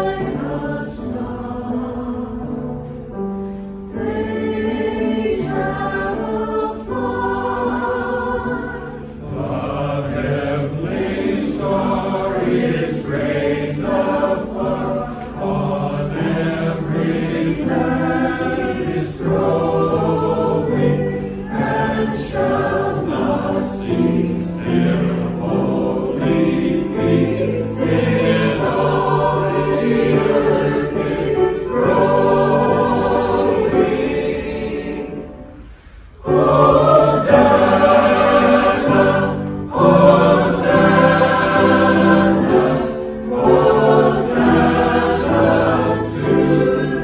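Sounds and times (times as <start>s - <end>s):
mixed choir singing in harmony: 0.0s - 47.0s.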